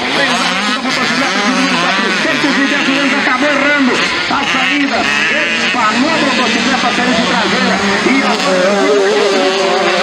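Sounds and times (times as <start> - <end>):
dirt bike engines racing: 0.0 - 10.0
man commentating: 0.0 - 10.0.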